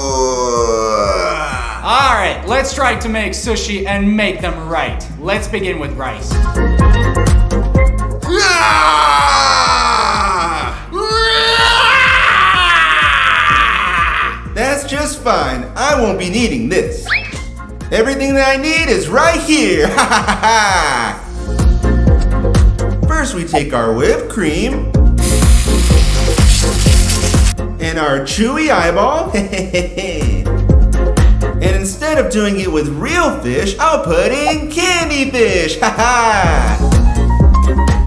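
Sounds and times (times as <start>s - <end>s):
background music with steady beat: 0.0s - 38.0s
background music with a beat: 6.2s - 8.3s, 21.3s - 23.8s, 29.3s - 31.6s, 33.6s - 38.0s
aerosol can spraying: 25.2s - 27.6s.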